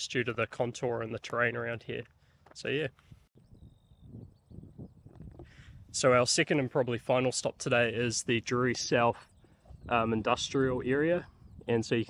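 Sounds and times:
faint bird chirps: 3.4 - 5.8, 11.2 - 11.8.

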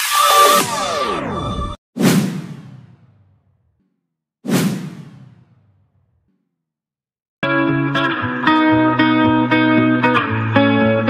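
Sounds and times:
whoosh and hit transition effects: 2.0 - 6.0.

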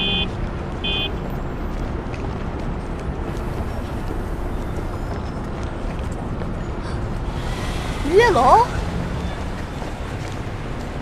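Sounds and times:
street noise: 0.0 - 11.0.

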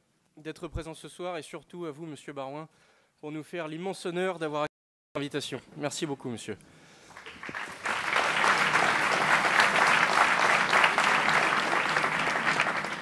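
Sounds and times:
audience applauding: 7.1 - 13.0.

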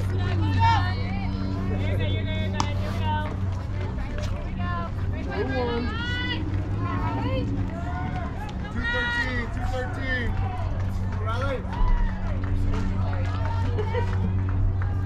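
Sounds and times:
people calling out and chattering: 0.0 - 15.0
steady low hum: 0.0 - 15.0.

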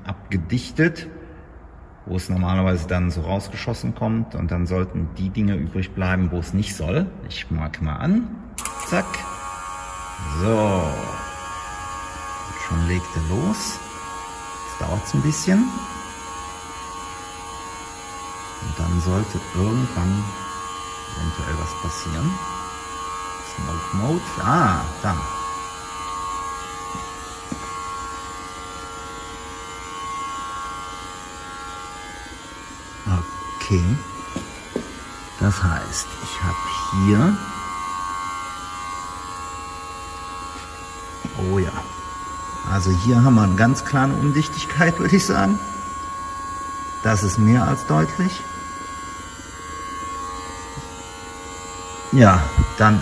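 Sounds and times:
machine electric buzz: 8.5 - 53.0.

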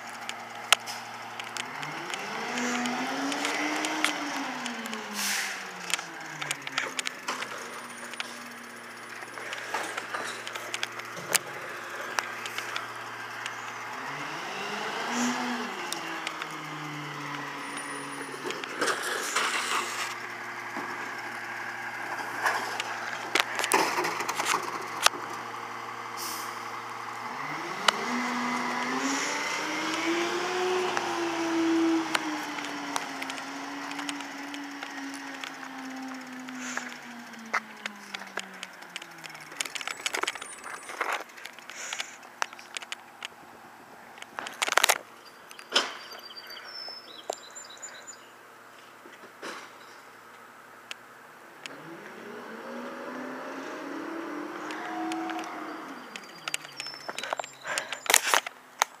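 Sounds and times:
diesel truck engine idling and revving: 0.0 - 59.0
air brake hisses: 5.1 - 5.7, 26.2 - 26.6.

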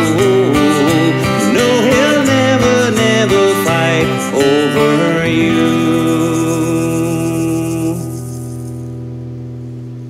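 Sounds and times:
shaker rattle: 0.0 - 9.0.

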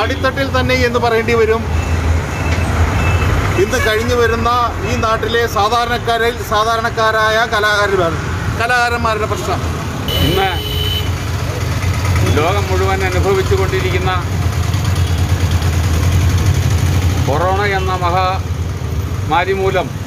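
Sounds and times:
men's voices: 3.4 - 10.7
vehicle engine idling: 10.6 - 19.5.

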